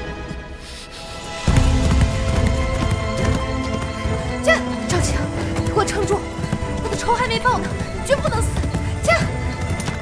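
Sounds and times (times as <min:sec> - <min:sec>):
background music: 0:00.0 - 0:10.0
galloping horse hoofbeats: 0:01.5 - 0:10.0.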